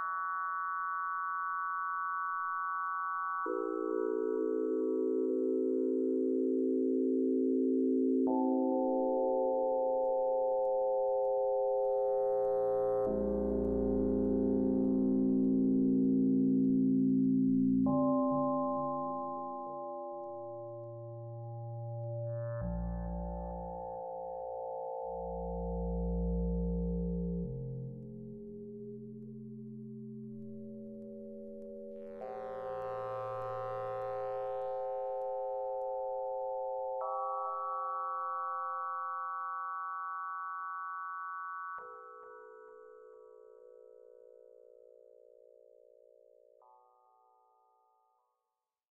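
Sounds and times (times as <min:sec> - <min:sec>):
synthesizer sine-like chord: 0:03.5 - 0:46.8.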